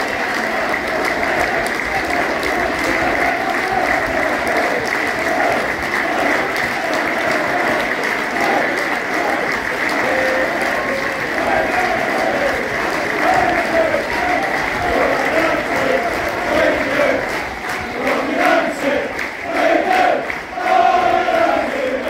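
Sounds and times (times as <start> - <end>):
crowd clapping: 0.0 - 22.0.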